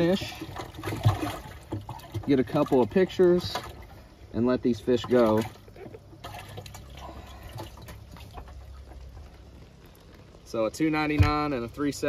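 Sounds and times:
water dripping: 0.0 - 12.0
water sloshing and splashing: 0.0 - 12.0.

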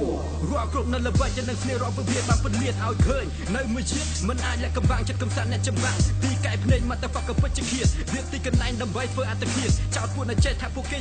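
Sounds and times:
hip hop beat with deep bass: 0.0 - 11.0
rapping: 0.0 - 11.0
heavy kick drums: 1.2 - 4.2, 4.8 - 10.7.

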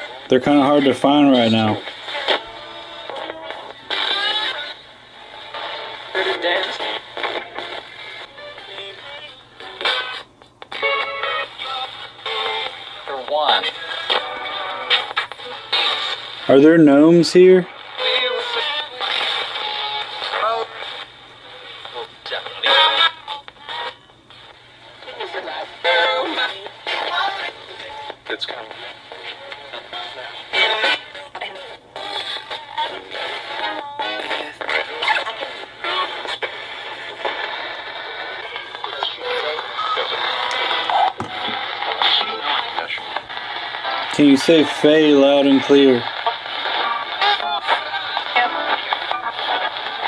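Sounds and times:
radio sweeping through stations: 0.0 - 8.3, 32.4 - 50.0.

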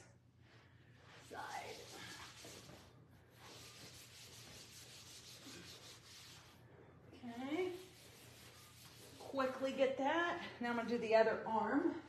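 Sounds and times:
pad rubbing on leather: 1.3 - 6.6, 7.4 - 9.6.

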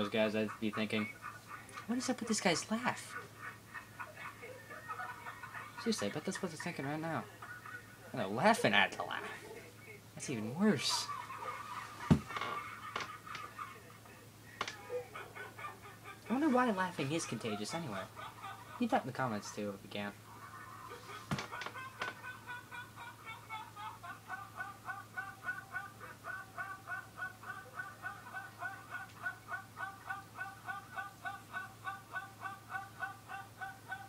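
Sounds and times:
man laughing in high choppy bursts: 2.8 - 6.1, 10.6 - 19.2, 20.2 - 34.0.

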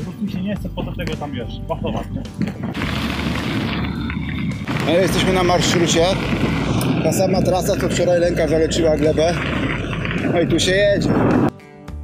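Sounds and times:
wind buffeting microphone: 2.1 - 11.5
man's voice: 4.8 - 6.2.

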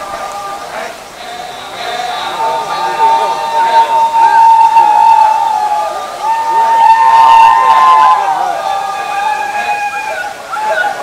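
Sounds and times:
group chanting in unison: 0.0 - 6.8.

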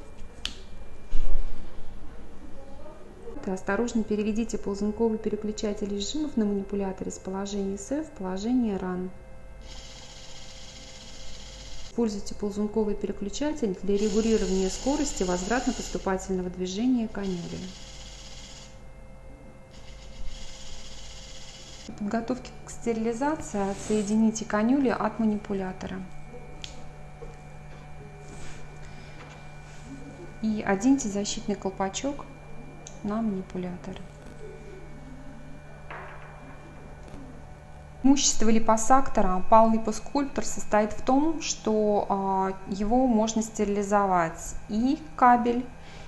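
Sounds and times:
electric handpiece buzzing: 3.7 - 12.0, 13.4 - 46.0.

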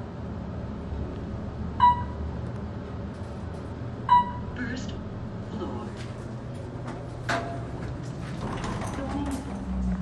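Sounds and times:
low elevator hum: 0.0 - 10.0
elevator doors sliding open: 6.4 - 10.0.

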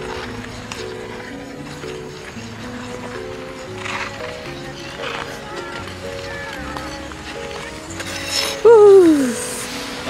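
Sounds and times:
faint background music: 0.0 - 10.0
person crying out: 8.6 - 9.4.

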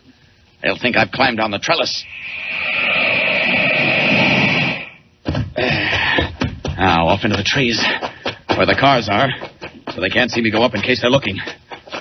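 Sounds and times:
rushing air whoosh: 2.0 - 5.0.

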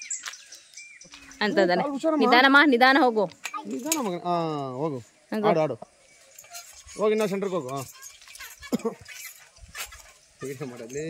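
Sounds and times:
light metallic clinks: 3.3 - 4.2, 6.2 - 11.0.

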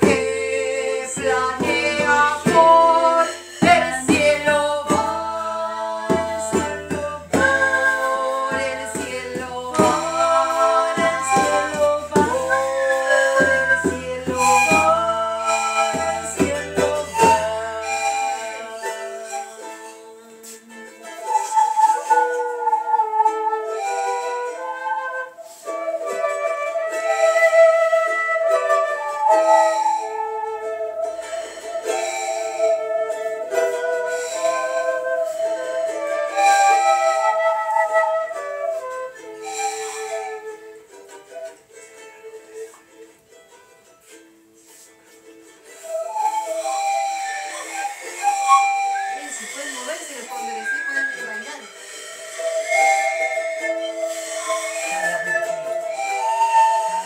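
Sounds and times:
shaker percussion: 0.0 - 57.0
violin melody: 0.0 - 57.0.

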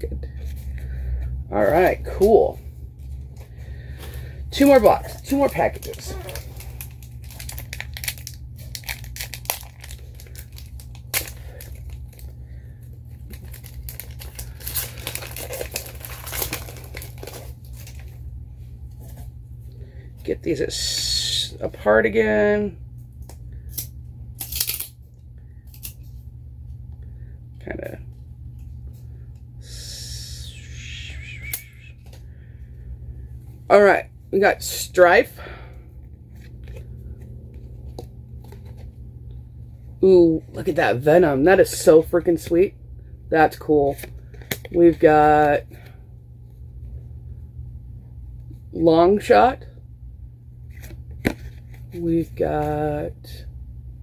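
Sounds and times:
wrapper crinkling and tearing: 4.6 - 12.3, 13.1 - 18.2, 23.7 - 25.0
low hum: 22.7 - 40.6.

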